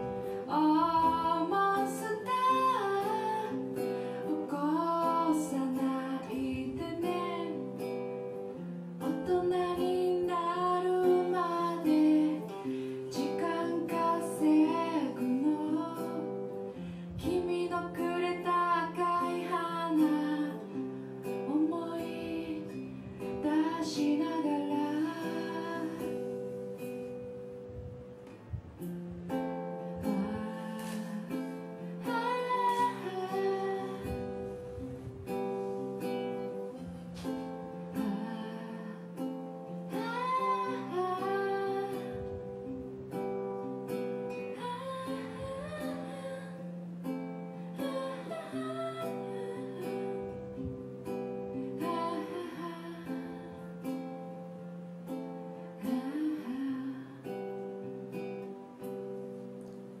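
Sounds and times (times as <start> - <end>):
woman singing: 0.0 - 27.0, 29.8 - 54.7, 55.5 - 58.7
acoustic guitar strumming: 0.0 - 60.0.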